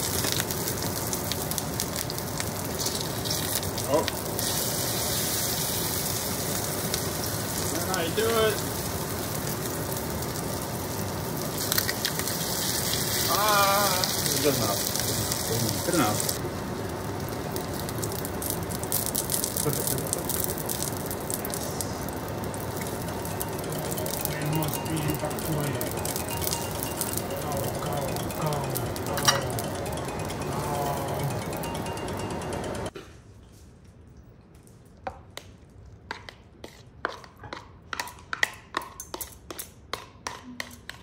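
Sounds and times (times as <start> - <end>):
tofu sizzling in oil: 0.0 - 27.4.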